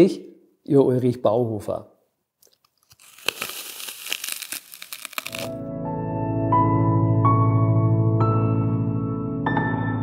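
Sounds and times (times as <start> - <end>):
chewing and crunching: 2.4 - 5.5
biting into crisp apple: 2.4 - 5.6
soft ambient piano music: 5.5 - 10.0.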